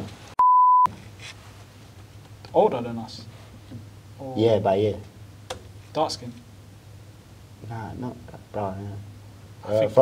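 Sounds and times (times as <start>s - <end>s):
high censor beep: 0.4s - 0.9s.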